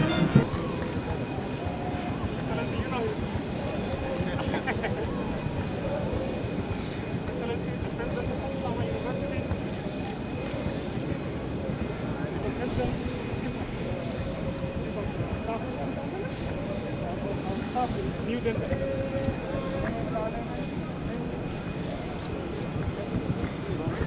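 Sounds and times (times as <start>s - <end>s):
faint continuous whine: 0.0s - 24.0s
low rumble of airport apron: 0.0s - 24.0s
people talking: 0.0s - 24.0s.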